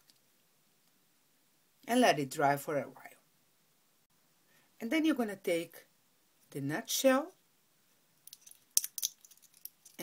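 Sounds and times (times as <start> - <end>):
walnut shell crackling clicks: 8.3 - 10.0.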